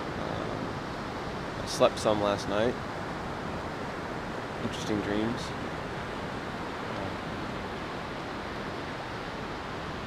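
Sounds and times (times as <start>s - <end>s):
ocean surf breaking on beach: 0.0s - 10.0s.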